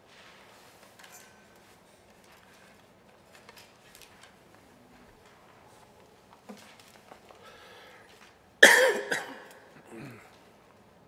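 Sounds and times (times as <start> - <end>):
person coughing: 8.6 - 10.4.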